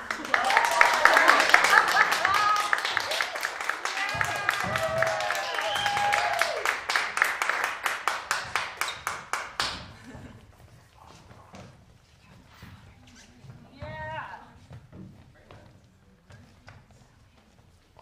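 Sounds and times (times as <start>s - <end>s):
audience applauding: 0.0s - 10.0s
person whooping: 4.2s - 6.7s.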